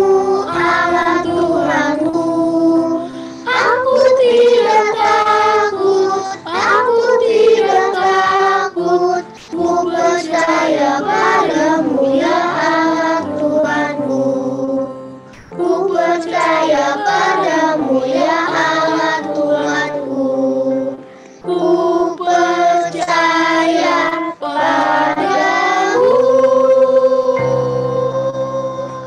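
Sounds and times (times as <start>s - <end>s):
children singing together: 0.0s - 29.0s.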